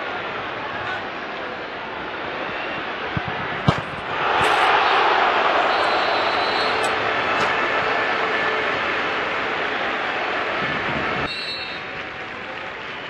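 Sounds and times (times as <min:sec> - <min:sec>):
crowd murmur: 0:00.0 - 0:13.0
stadium crowd cheering: 0:00.0 - 0:13.0.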